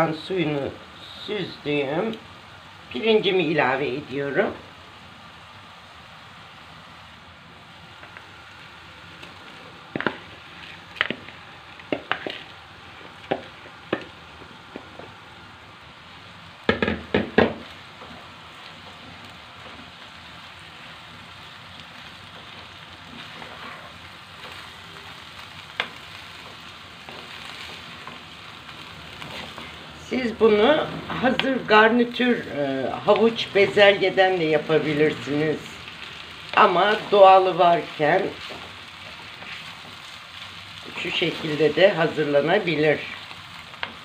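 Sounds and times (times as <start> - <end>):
carrots sizzling in pan: 0.0 - 44.0
wooden spoon knocking on pan: 13.3 - 15.1, 16.7 - 17.7.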